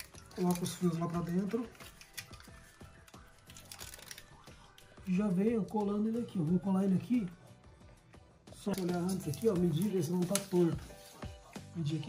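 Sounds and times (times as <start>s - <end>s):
wires rustling: 0.0s - 6.0s, 8.6s - 11.6s
faint background music: 0.0s - 12.0s.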